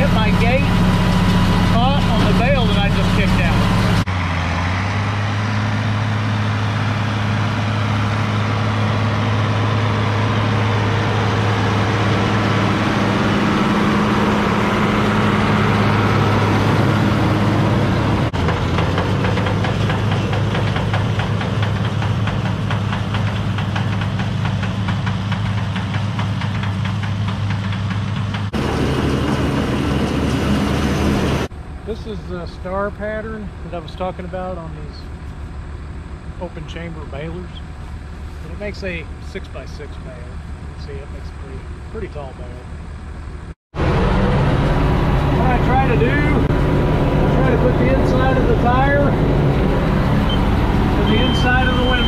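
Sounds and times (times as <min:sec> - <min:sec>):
diesel tractor engine under load: 0:00.0 - 0:31.9, 0:32.6 - 0:52.0.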